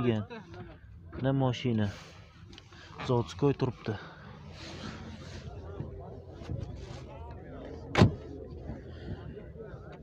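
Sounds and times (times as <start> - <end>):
car door slamming: 7.9 - 8.3.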